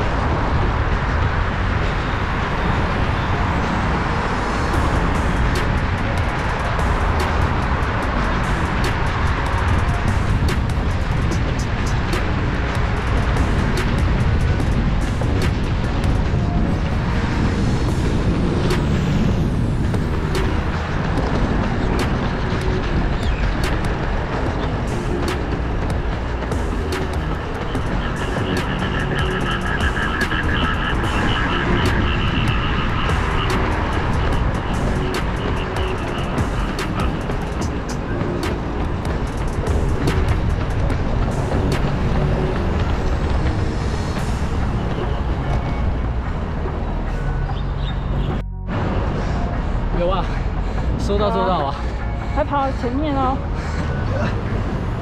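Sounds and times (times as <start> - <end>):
background music: 0.0 - 55.0
wind rumble on microphone: 0.0 - 55.0.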